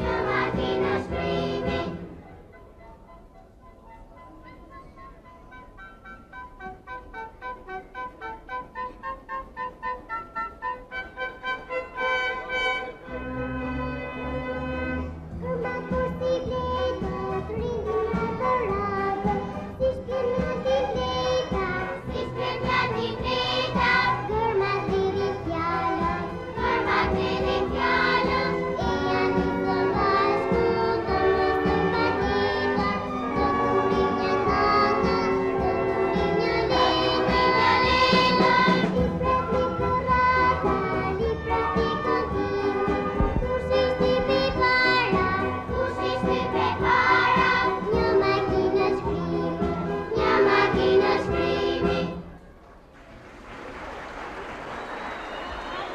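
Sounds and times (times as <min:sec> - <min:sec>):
children's choir singing: 0:00.0 - 0:02.5, 0:11.2 - 0:52.4
orchestra playing: 0:04.3 - 0:15.9, 0:18.7 - 0:48.4.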